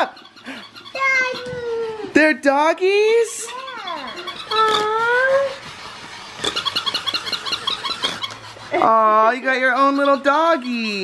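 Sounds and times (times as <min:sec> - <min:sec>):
toy motor gears clicking: 0:00.0 - 0:02.2, 0:03.2 - 0:11.0.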